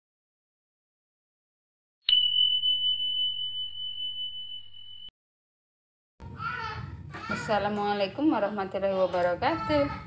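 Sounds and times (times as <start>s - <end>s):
high bell-like ding: 2.1s - 5.1s.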